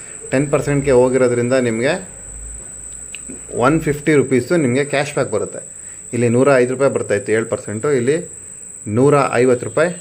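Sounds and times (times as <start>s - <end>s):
man speaking: 0.2s - 2.2s, 3.3s - 10.0s.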